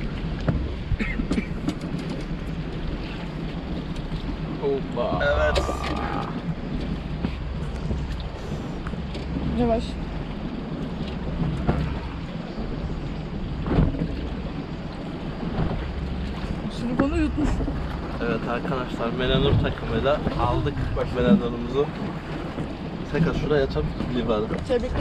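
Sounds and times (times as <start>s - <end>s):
wind rumble on microphone: 0.0s - 25.0s
quiet voices: 4.6s - 6.4s.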